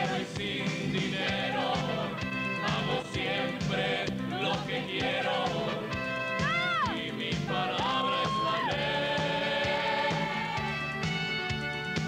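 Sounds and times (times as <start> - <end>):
live band music: 0.0 - 12.0.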